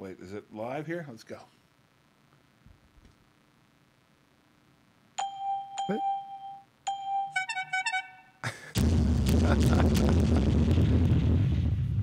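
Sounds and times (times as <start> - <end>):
bell dinging: 5.2 - 7.5
chiming bell notes: 5.2 - 8.4
sharp hit and boom: 8.8 - 12.0.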